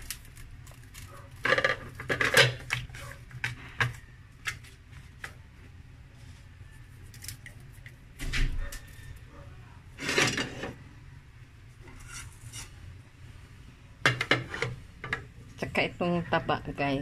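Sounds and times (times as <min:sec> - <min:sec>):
kitchenware clattering: 0:10.0 - 0:10.8, 0:14.1 - 0:15.3.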